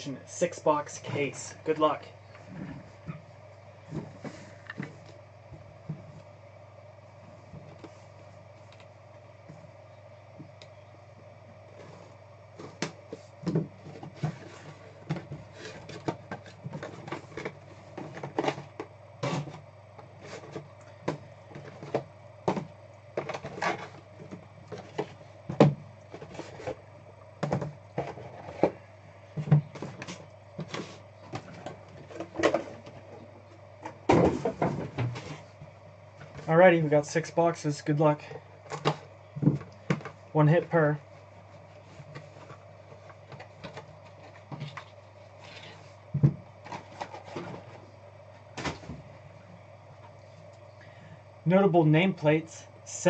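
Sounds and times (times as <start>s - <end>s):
steady low hum: 0.0s - 53.0s
cardboard boxes knocking and scraping: 34.0s - 35.4s.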